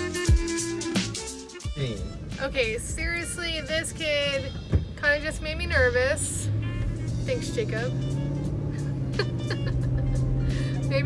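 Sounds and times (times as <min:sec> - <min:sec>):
music playing: 0:00.0 - 0:11.0
car cabin road drone: 0:01.8 - 0:11.0
person laughing: 0:09.0 - 0:10.8.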